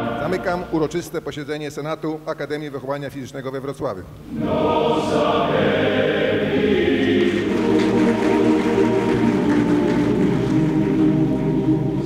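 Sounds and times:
choir singing held chords: 0:00.0 - 0:01.4, 0:04.2 - 0:12.0.

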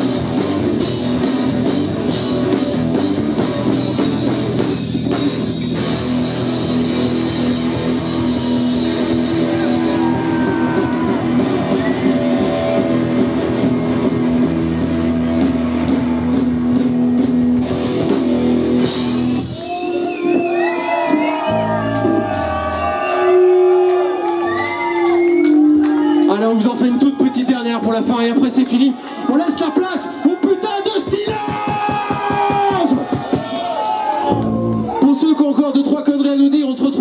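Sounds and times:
live rock band playing: 0:00.0 - 0:26.8
crowd cheering: 0:05.4 - 0:36.4.

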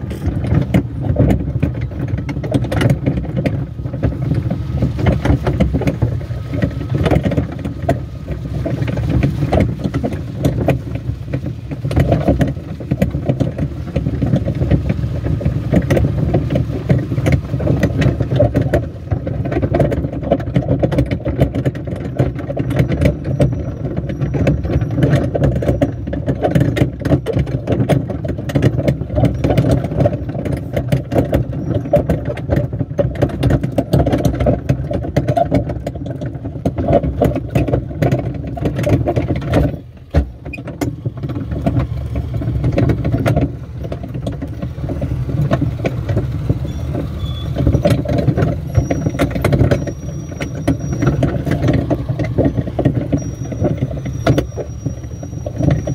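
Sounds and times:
plastic barrel cars rattling: 0:00.0 - 0:55.9
small engine running under load: 0:40.9 - 0:55.9.

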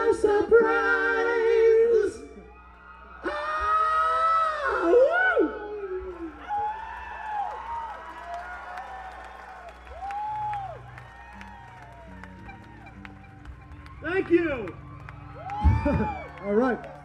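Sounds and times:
loud drawn-out yell: 0:00.0 - 0:13.0, 0:13.9 - 0:17.0
concert audience cheering: 0:02.3 - 0:17.0
whoops: 0:02.5 - 0:17.0.

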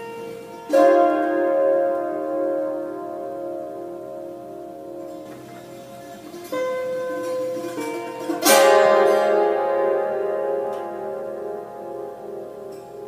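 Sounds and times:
hammered dulcimer notes ringing: 0:00.0 - 0:13.0.

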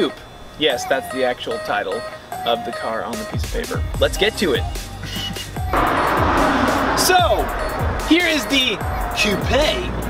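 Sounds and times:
music with low beat: 0:02.4 - 0:10.0
loud rushing noise effect: 0:05.7 - 0:08.2.

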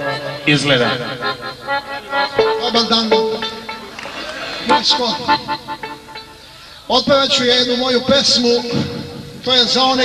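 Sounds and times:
folk band with accordions and violin: 0:00.0 - 0:07.0.

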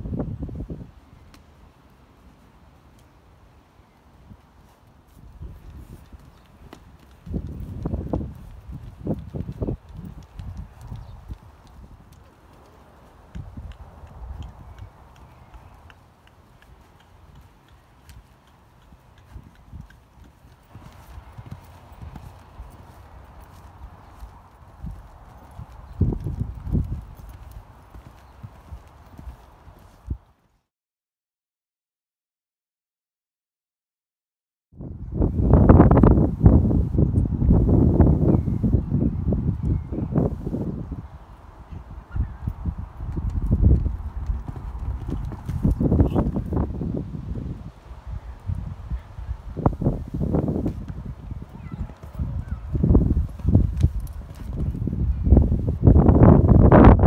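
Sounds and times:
horse hooves thudding on ground: 0:04.4 - 0:30.5, 0:42.4 - 0:47.8, 0:48.4 - 0:57.0.

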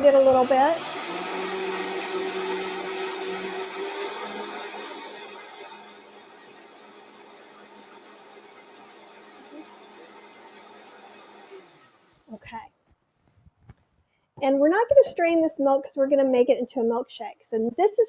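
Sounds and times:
blender motor running: 0:00.0 - 0:12.3.

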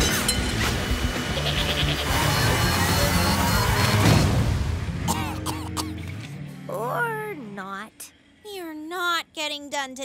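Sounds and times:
quavering sound effect: 0:01.3 - 0:04.4.

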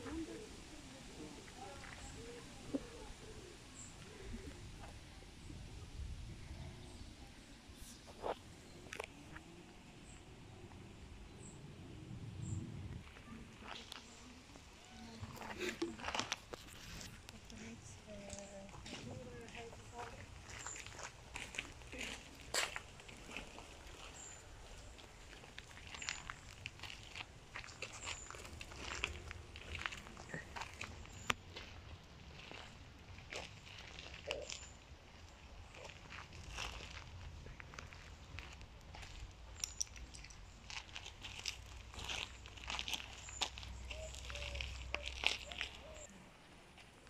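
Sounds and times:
footsteps crunching on gravel: 0:15.2 - 0:46.1.

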